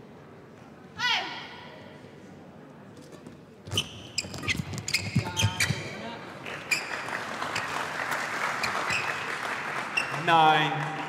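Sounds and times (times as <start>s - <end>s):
shoes squeaking on floor: 3.0s - 7.8s, 8.6s - 9.3s, 10.0s - 10.3s
crowd applause: 6.4s - 11.0s.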